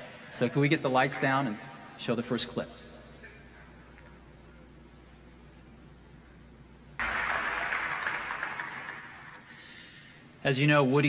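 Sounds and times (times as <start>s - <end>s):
audience applauding: 7.0s - 9.7s.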